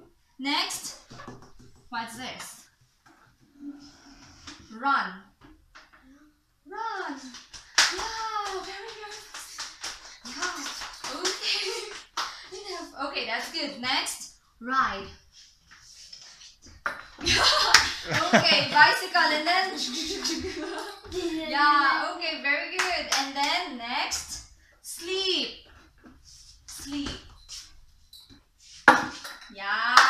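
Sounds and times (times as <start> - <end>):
person speaking: 18.0 - 20.0.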